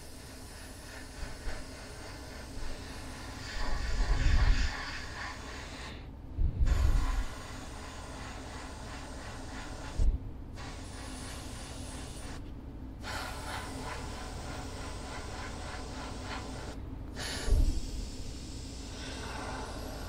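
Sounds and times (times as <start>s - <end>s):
airbrush spraying air hiss: 0.0s - 20.0s.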